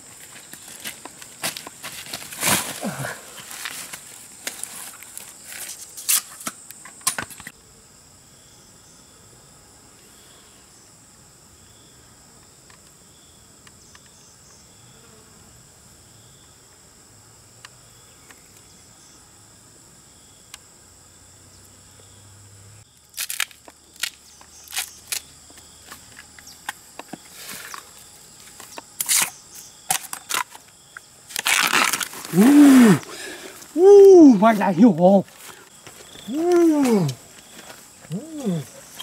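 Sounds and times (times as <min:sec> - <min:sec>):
insects droning: 0:00.0 - 0:39.0.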